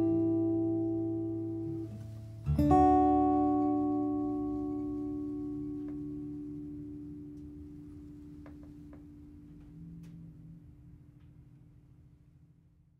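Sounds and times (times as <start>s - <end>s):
acoustic guitar chord ringing: 0.0s - 10.8s.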